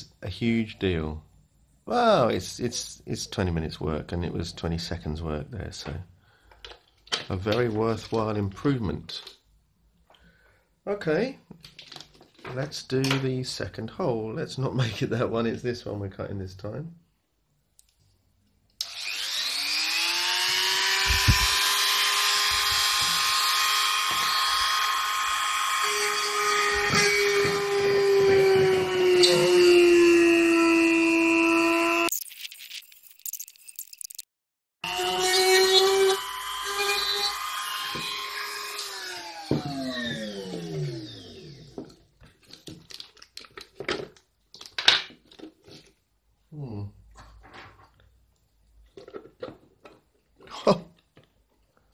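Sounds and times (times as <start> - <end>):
rotary tool whining: 18.8 - 32.1, 34.9 - 41.8.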